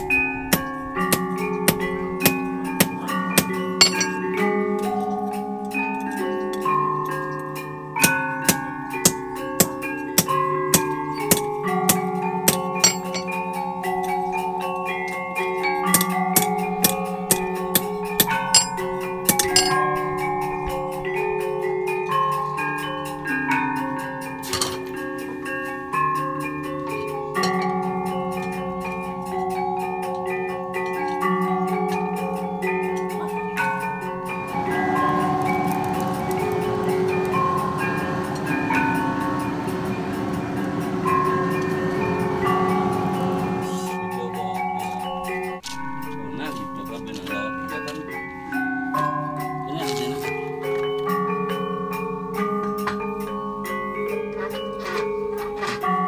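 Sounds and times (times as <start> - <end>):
gamelan metallophone music: 0.0 - 56.0
hammer striking anvil: 0.5 - 4.2, 8.0 - 13.4, 15.9 - 20.0.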